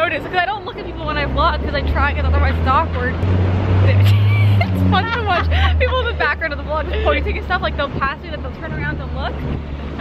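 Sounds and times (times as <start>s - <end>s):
passing vehicles rumbling: 0.0s - 10.0s.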